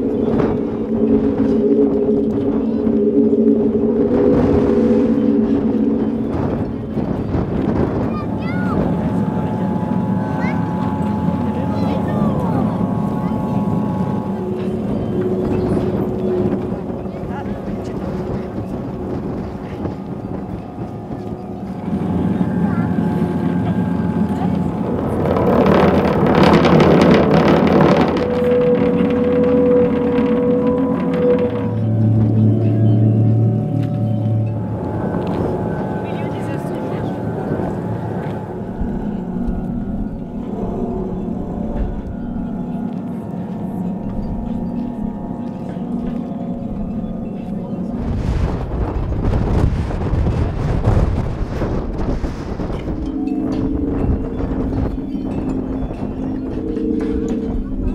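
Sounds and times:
deep low tone: 0.0s - 57.9s
wind gust on microphone: 0.0s - 57.9s
wind-played strings humming: 0.0s - 57.9s.

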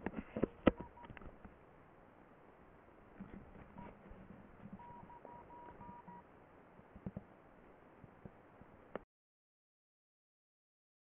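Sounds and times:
short electronic beeps: 4.8s - 6.2s.

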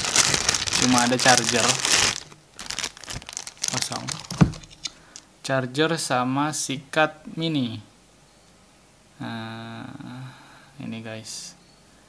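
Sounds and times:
plastic bag crinkling: 0.0s - 5.2s.

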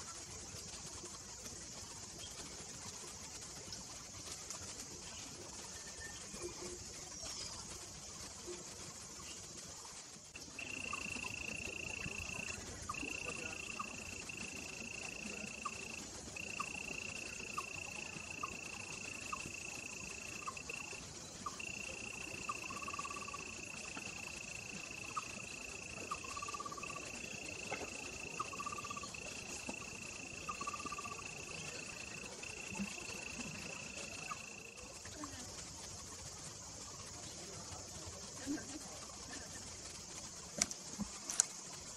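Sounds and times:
constant high hiss: 0.0s - 41.9s
high-pitched insect trill: 0.0s - 41.9s.

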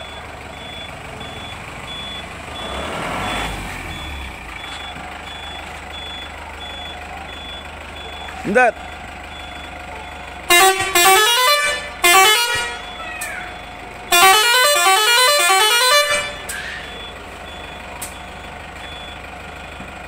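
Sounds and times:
musical air horn playing tune: 10.5s - 12.9s, 14.1s - 16.6s.

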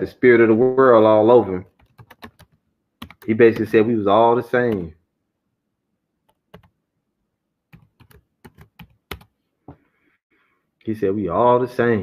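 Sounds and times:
typing on computer keyboard: 1.8s - 3.8s, 6.3s - 6.8s, 7.7s - 9.3s.

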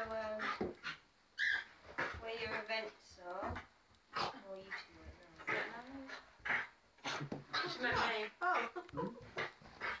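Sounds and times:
person laughing: 8.5s - 9.3s.

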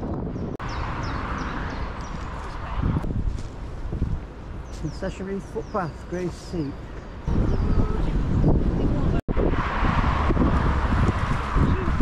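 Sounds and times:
wind buffeting microphone: 0.0s - 5.8s, 7.0s - 12.0s.

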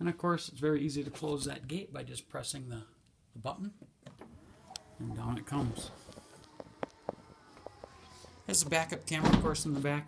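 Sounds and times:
liftgate motor running: 4.2s - 9.2s.

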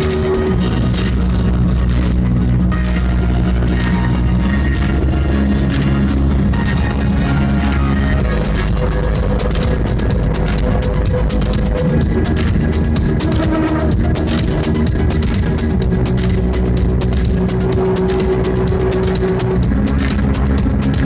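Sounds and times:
electronic dance music: 0.0s - 21.0s
heavy sustained bass line: 0.0s - 21.0s.

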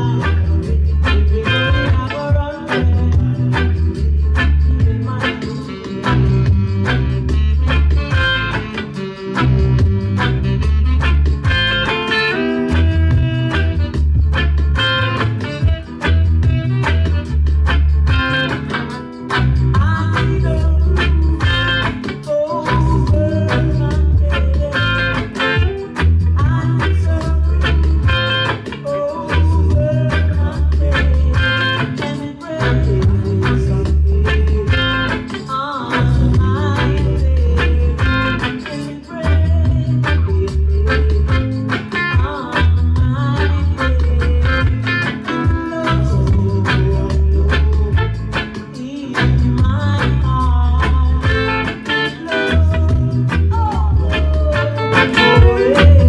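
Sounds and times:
deep pulsing bassline: 0.0s - 5.3s, 6.1s - 8.7s, 9.4s - 12.0s, 12.7s - 18.6s, 19.4s - 22.0s, 22.7s - 28.4s, 29.4s - 31.7s, 32.6s - 35.2s, 36.0s - 38.5s, 39.4s - 41.7s, 42.6s - 44.9s, 45.9s - 48.4s, 49.2s - 51.8s, 52.5s - 54.8s, 55.4s - 56.0s
electric guitar chord strokes: 0.0s - 50.1s
person singing: 0.0s - 56.0s.

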